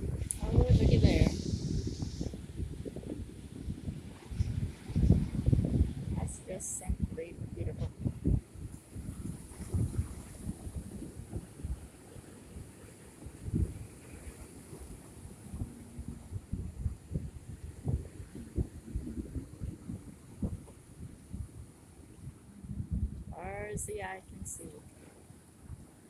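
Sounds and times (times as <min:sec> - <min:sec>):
wind buffeting microphone: 0:00.0 - 0:24.8.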